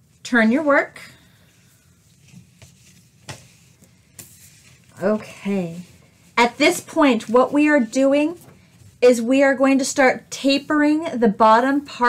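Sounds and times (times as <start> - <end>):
soft yarn rustles: 0.0 - 9.8.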